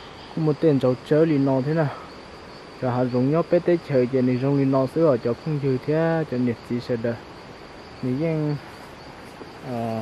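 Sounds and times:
insects droning: 0.0s - 10.0s
person speaking: 9.5s - 10.0s.

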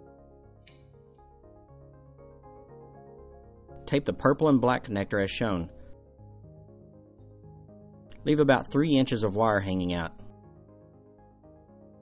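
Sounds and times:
keyboard melody: 0.0s - 4.5s, 5.8s - 8.8s, 9.9s - 12.0s
electrical tape being torn: 0.6s - 1.2s.

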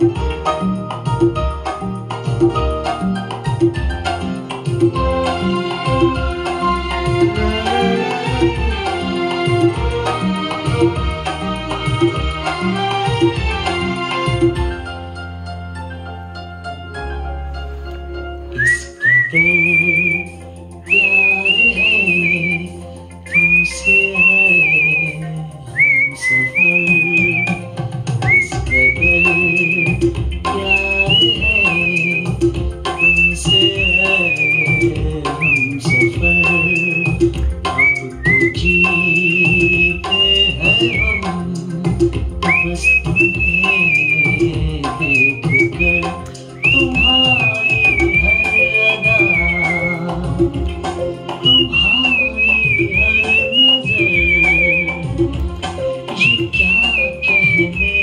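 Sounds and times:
instrumental backing track: 0.0s - 58.0s
person whistling a melody: 18.5s - 50.6s, 51.3s - 55.3s, 56.1s - 58.0s.

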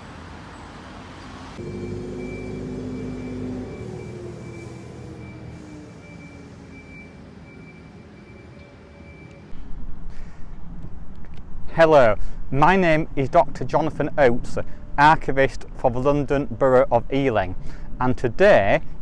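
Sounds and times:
road traffic noise: 0.0s - 11.6s, 14.4s - 15.0s
vehicle passing by: 0.1s - 9.2s.

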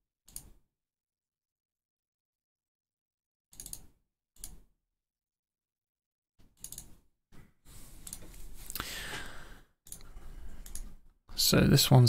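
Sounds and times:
computer mouse clicks: 0.3s - 0.6s, 3.5s - 4.7s, 6.4s - 7.0s, 8.0s - 8.8s, 9.9s - 11.0s.

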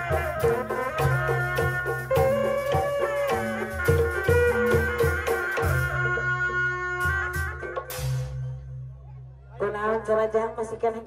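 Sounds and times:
drum strokes: 0.0s - 8.7s.

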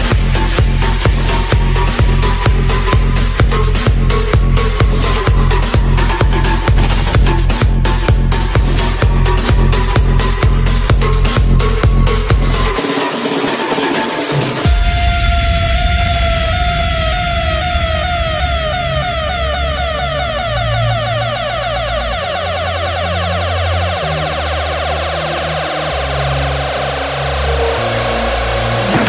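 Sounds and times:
dance drum beat: 0.0s - 15.1s
held bass notes: 14.7s - 29.0s
sweeping synth tone: 15.5s - 29.0s.

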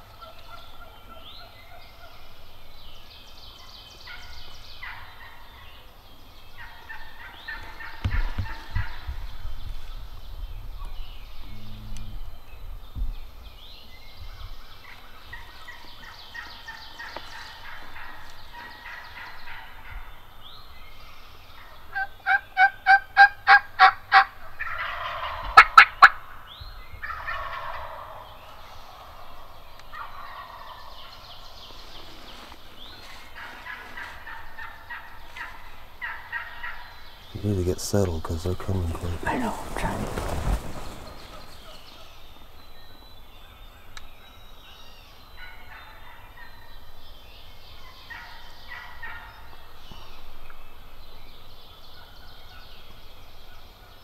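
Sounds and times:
turkeys gobbling: 0.1s - 2.2s, 4.1s - 5.9s, 6.6s - 9.2s, 14.8s - 20.0s, 21.6s - 42.2s, 45.4s - 46.7s, 47.9s - 49.5s
loud evenly spaced calls: 21.6s - 43.0s.

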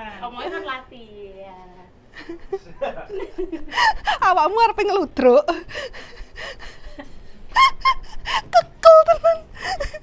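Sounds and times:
faint breathing: 5.6s - 7.0s
woman laughing and exclaiming: 7.5s - 10.0s.

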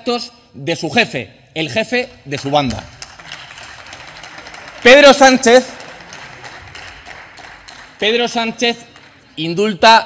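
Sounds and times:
room noise of a large chamber: 0.0s - 10.0s.

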